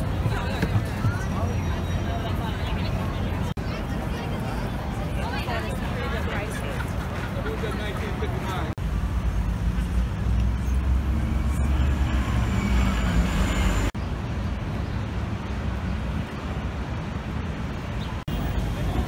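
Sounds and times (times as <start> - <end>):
people talking on sidewalk: 0.0 - 11.3, 18.2 - 19.0
road traffic rumble: 0.0 - 19.0.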